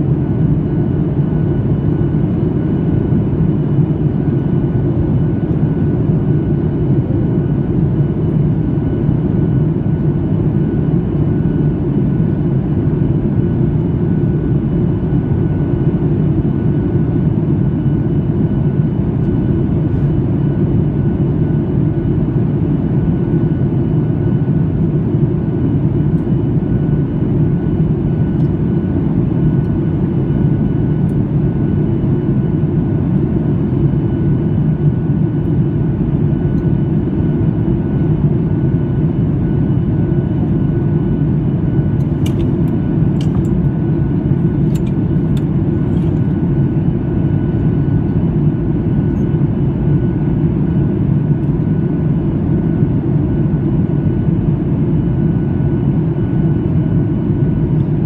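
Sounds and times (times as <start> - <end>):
airplane cabin engine rumble: 0.0 - 58.0.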